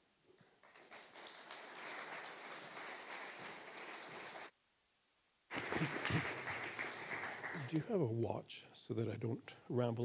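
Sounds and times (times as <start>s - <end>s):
audience applauding: 0.4s - 4.5s, 5.5s - 7.9s.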